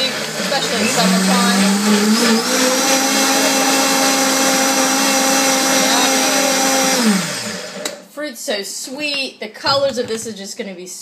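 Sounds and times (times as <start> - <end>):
blender motor whine: 0.0 - 8.0.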